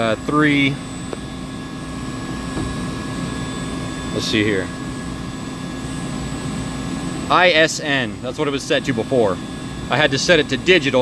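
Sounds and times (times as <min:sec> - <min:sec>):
chiller machinery hum: 0:00.0 - 0:11.0.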